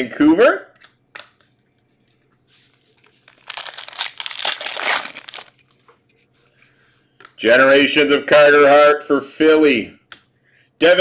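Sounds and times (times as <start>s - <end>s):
wrapper crinkling and tearing: 3.0s - 5.6s.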